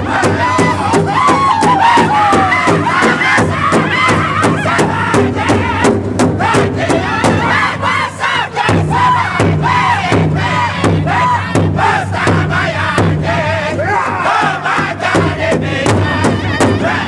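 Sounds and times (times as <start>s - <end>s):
group singing in high unison: 0.0s - 17.0s
large drum steady beat: 0.0s - 17.0s.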